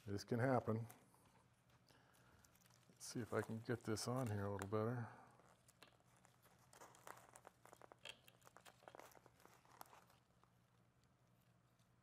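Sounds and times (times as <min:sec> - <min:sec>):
plant crinkling and crackling: 0:00.0 - 0:12.0.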